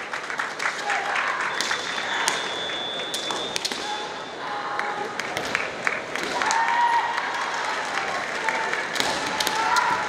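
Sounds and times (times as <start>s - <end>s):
crowded sports hall noise: 0.0s - 10.0s.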